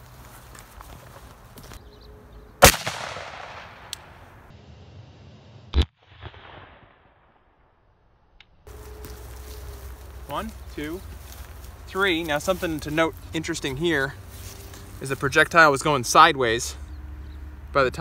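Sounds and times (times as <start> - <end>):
rifle shot with echo: 2.6 - 4.3, 5.7 - 7.4
sharp crack: 2.6 - 4.5, 5.7 - 7.6.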